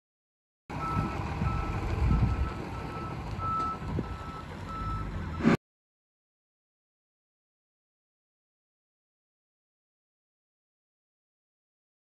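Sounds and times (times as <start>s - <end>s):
truck engine rumble: 0.7s - 5.6s
truck reverse alarm beeping: 0.7s - 5.6s.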